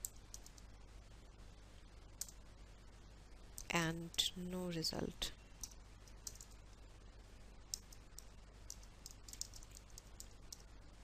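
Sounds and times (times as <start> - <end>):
faint keyboard keystrokes: 0.0 - 0.7, 5.6 - 6.6, 7.7 - 10.7.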